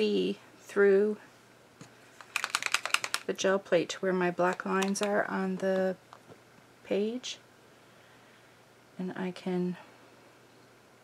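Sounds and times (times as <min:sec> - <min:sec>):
marker ball rattling: 0:02.2 - 0:03.4, 0:04.4 - 0:05.9.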